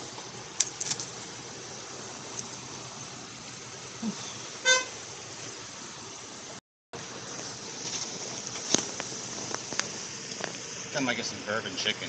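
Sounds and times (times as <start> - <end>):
outdoor background hiss: 0.0 - 12.0
short car horn beep: 4.6 - 5.0.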